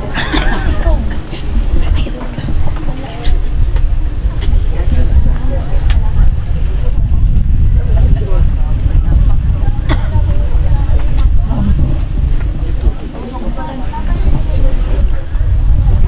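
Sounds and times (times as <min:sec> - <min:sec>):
faint indistinct voices: 0:00.0 - 0:16.0
wind buffeting microphone: 0:00.0 - 0:16.0.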